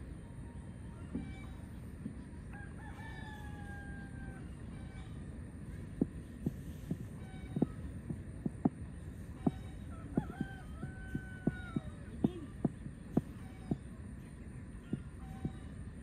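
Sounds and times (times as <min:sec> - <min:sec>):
soft low thumps: 0:01.1 - 0:02.4, 0:05.7 - 0:14.0
rooster crowing: 0:02.5 - 0:05.2, 0:09.9 - 0:12.1.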